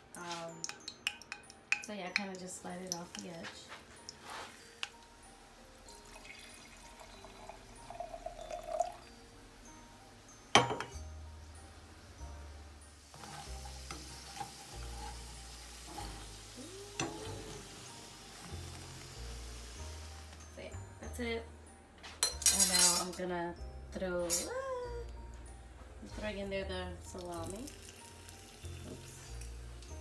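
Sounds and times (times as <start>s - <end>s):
wine pouring into glass: 5.9s - 9.1s
slices sizzling in hot oil: 12.9s - 20.5s, 27.4s - 30.0s.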